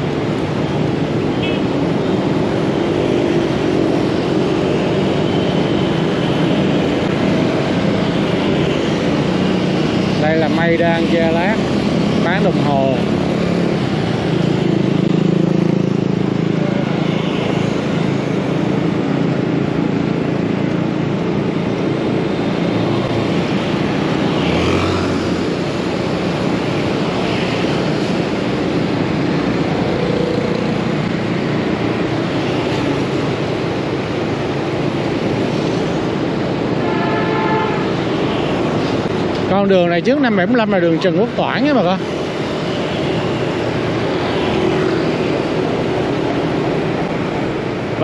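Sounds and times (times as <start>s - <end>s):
road noise: 0.0s - 48.0s
scooter traffic: 0.0s - 48.0s.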